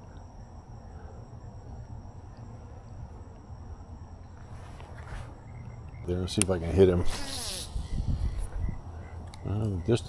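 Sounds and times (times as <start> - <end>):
fishing line whizzing off reel: 7.0 - 8.4.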